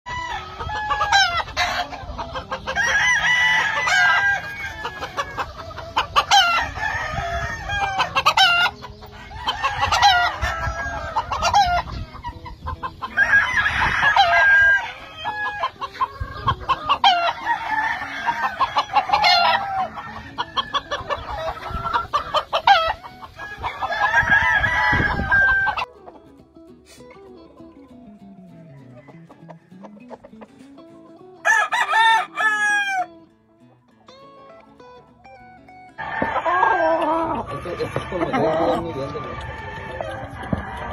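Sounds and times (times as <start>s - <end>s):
roosters crowing: 0.1s - 25.9s, 27.9s - 30.7s, 31.4s - 33.2s, 35.9s - 40.9s
rooster clucks and calls: 0.1s - 33.2s, 35.9s - 40.9s.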